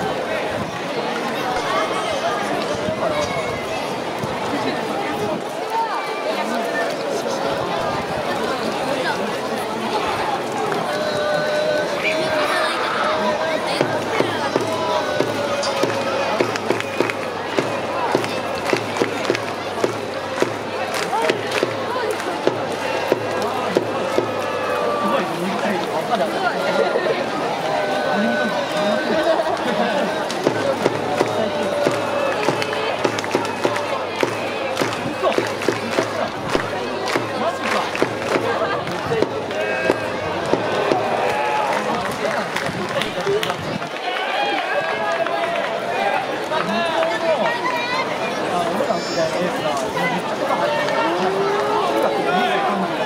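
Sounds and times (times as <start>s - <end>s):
crowd voices: 0.0s - 53.0s
spectators talking and calling out: 0.0s - 53.0s
rhythmic clacks: 13.7s - 24.5s, 29.5s - 41.3s.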